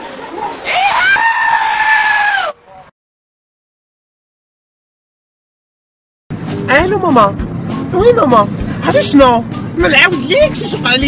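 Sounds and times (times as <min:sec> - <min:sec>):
goat screaming: 0:00.7 - 0:02.7.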